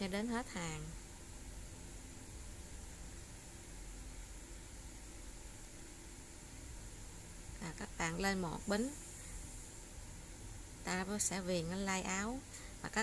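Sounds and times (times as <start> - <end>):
faint hiss: 0.0 - 13.0.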